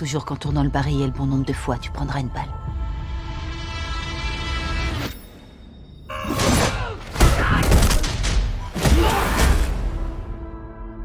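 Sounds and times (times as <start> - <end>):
deep trailer music: 0.0 - 11.0
heavy fight impacts: 6.4 - 9.9.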